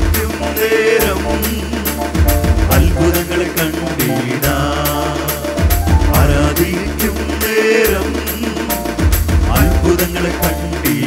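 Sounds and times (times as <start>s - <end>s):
group singing worship song: 0.0s - 11.0s
keyboards: 0.0s - 11.0s
steady beat: 0.0s - 11.0s.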